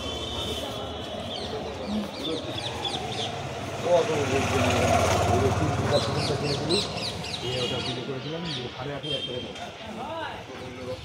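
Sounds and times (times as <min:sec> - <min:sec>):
people talking: 0:00.0 - 0:02.9, 0:03.8 - 0:11.0
small birds chirping: 0:01.2 - 0:04.0, 0:05.8 - 0:09.2.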